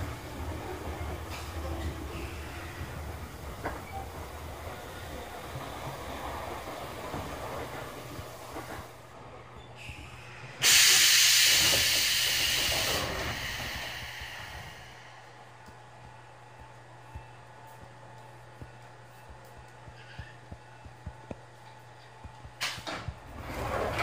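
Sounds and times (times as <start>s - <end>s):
train equipment hum: 0.0s - 24.0s
compressed air hiss: 10.6s - 15.2s.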